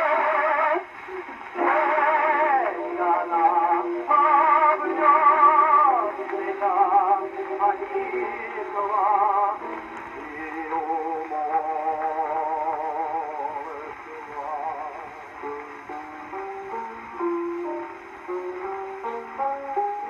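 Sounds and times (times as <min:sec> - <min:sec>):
tenor singing opera on gramophone: 0:00.0 - 0:20.0.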